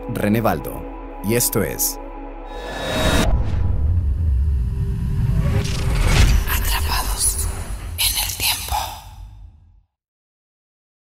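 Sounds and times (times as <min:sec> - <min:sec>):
low rumble: 0:02.5 - 0:09.6
whispered effect-laden voice: 0:06.4 - 0:09.3.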